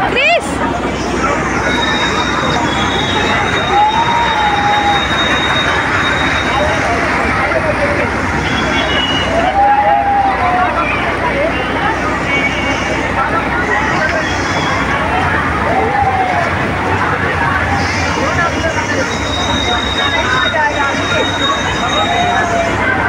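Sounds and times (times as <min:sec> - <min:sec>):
amusement rides running: 0:00.0 - 0:23.0
crowd noise: 0:00.0 - 0:23.0
voices calling out: 0:00.0 - 0:23.0.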